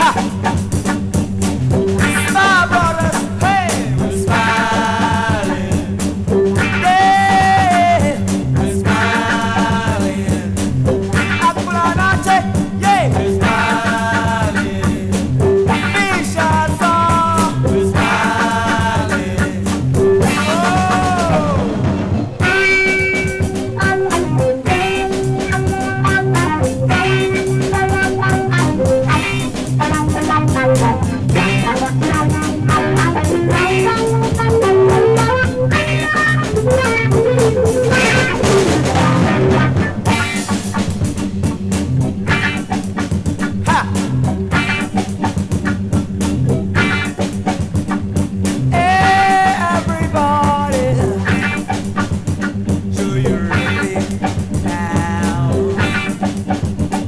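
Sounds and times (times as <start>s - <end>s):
drum kit groove: 0.0s - 57.0s
electric guitar lines: 0.0s - 57.0s.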